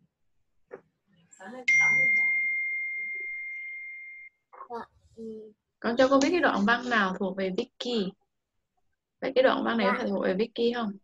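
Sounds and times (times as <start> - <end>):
bell-like ding: 1.7 - 4.4.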